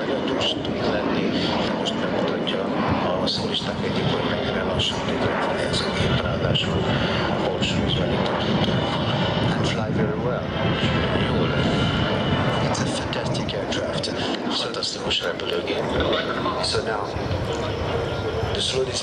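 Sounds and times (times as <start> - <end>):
jet engine in flight: 0.0 - 19.0
voices: 0.0 - 19.0.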